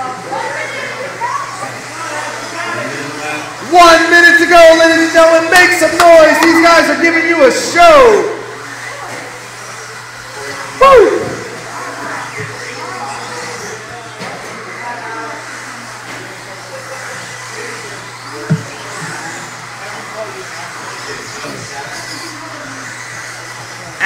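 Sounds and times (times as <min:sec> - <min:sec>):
faint voices: 0:00.0 - 0:24.0.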